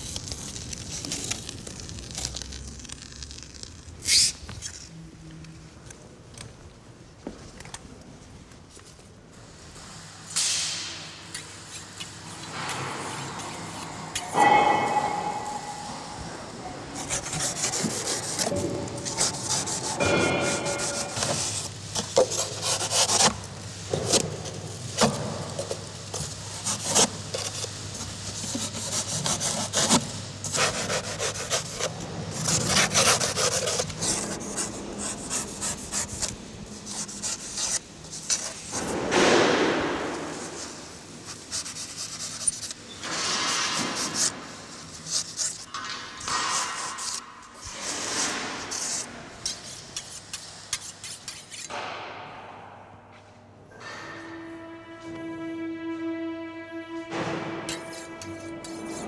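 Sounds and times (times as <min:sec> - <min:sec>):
knife scraping rigid foam: 0:17.0 - 0:52.0, 0:57.6 - 0:59.0.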